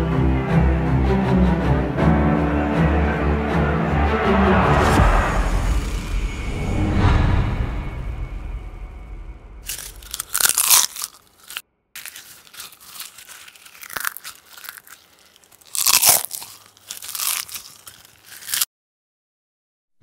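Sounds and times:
dramatic music: 0.0 - 11.1
popcorn crunching and chewing: 9.7 - 18.7.

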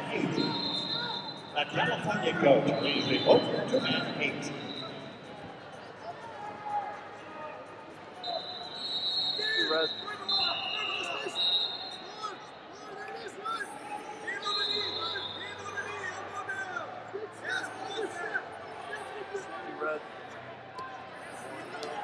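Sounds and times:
high whistle tones: 0.0 - 1.6, 2.6 - 5.2, 8.2 - 12.5, 14.0 - 16.2.

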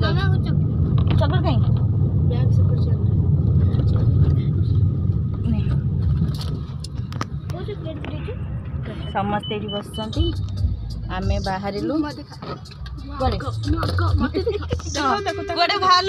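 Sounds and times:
car road and engine rumble: 0.0 - 16.0.

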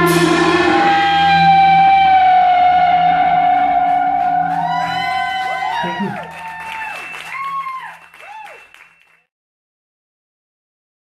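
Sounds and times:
electric guitar feedback: 0.0 - 9.2.

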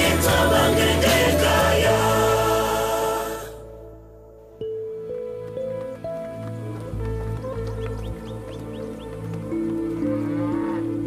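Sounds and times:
music of long held notes: 0.0 - 11.0
cow mooing: 10.1 - 11.0.

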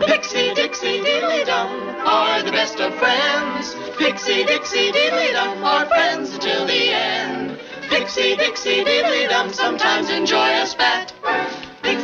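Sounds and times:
singing voices: 0.0 - 12.0.

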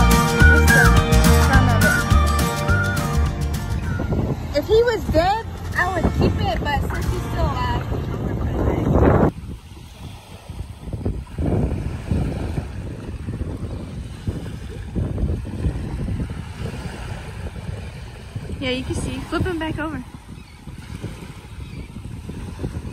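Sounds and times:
music with melodic line: 0.0 - 8.2
surf washing: 0.0 - 22.9
wind buffeting microphone: 1.7 - 22.9.

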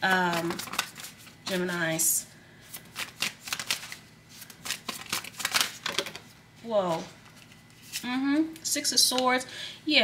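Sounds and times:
cards being shuffled: 0.0 - 1.8, 2.7 - 6.3.

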